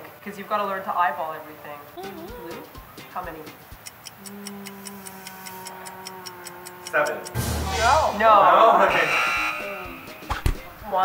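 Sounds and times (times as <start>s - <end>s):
held nasal voice sound: 2.0s - 3.0s, 4.2s - 7.3s
light clicks: 3.8s - 7.4s.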